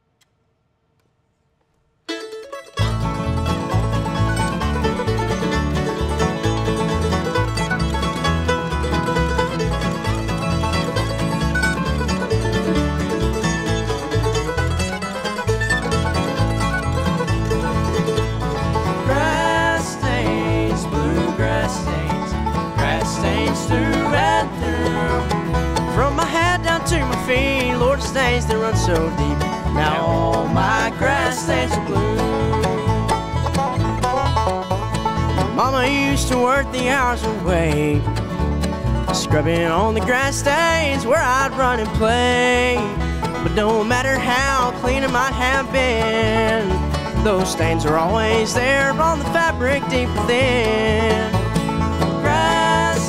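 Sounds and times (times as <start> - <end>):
bluegrass band playing: 2.1 - 53.0
upright bass beat: 2.8 - 53.0.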